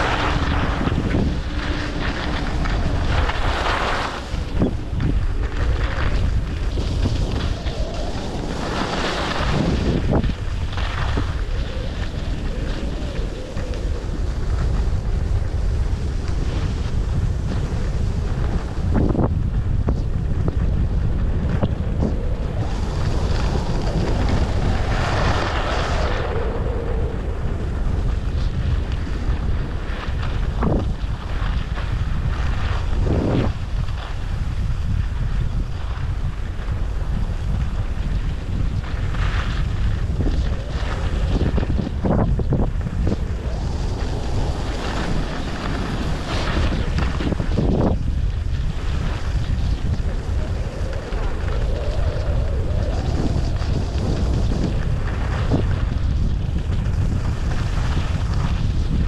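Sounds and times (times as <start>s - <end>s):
skis scraping on snow: 0.0s - 26.3s, 27.4s - 59.0s
wind buffeting microphone: 0.0s - 59.0s.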